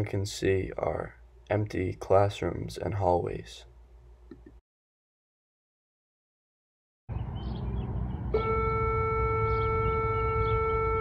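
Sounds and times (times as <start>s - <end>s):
steady pitched tone: 8.2s - 11.0s.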